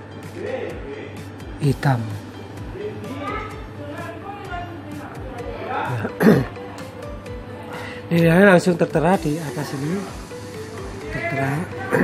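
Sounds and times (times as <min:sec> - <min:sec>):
background music: 0:00.0 - 0:12.0
man clearing his throat: 0:06.0 - 0:06.6.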